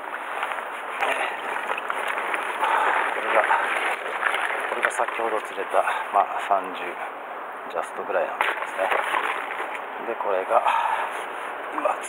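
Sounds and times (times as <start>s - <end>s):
crushed ice crunching in cooler: 1.0s - 5.8s, 8.4s - 9.8s.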